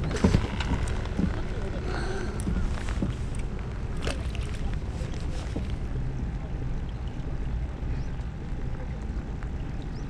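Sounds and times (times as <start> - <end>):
rain on water: 0.0 - 6.0, 6.6 - 10.0.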